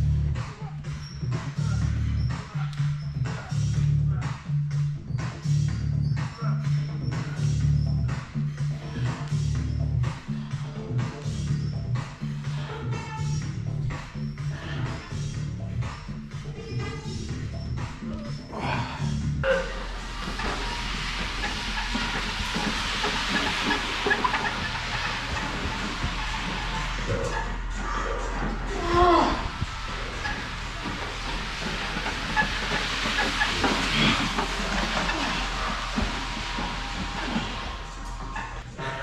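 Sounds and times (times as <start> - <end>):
background music: 0.0 - 39.0
sled scraping across turf: 19.4 - 38.7.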